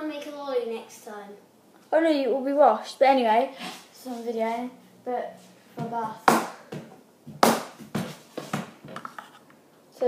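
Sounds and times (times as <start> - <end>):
plastic mould knocks and scuffs: 5.8 - 9.2.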